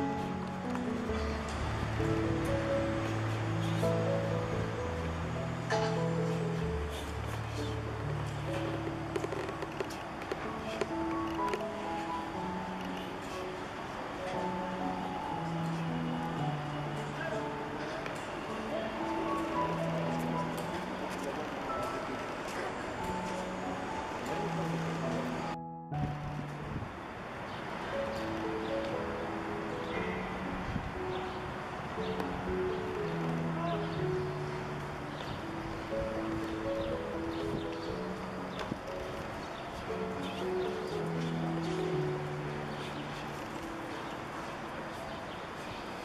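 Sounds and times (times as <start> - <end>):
city street traffic noise: 0.0 - 46.0
outdoor background noise: 0.0 - 46.0
soft music with long held notes: 0.0 - 46.0.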